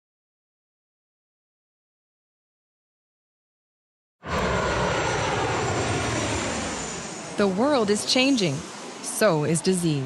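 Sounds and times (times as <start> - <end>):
aircraft engine rushing: 4.2 - 10.0.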